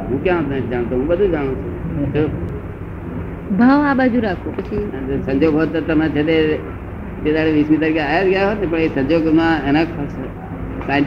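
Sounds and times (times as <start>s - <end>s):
person speaking: 3.5s - 6.6s.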